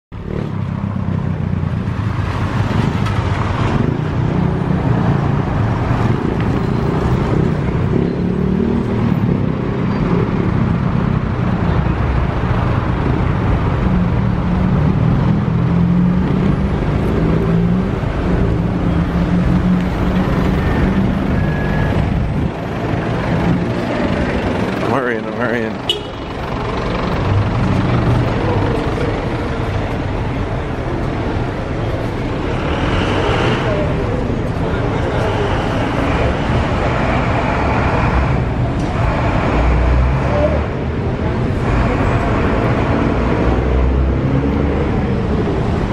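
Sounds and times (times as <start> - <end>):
car engines humming: 0.1 - 45.9
low street rumble: 0.1 - 45.9
road noise: 0.1 - 45.9.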